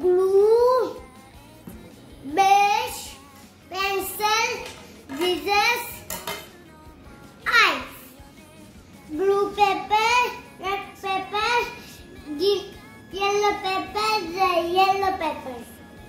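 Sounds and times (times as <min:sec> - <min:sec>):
child's sing-song voice: 0:00.0 - 0:16.0.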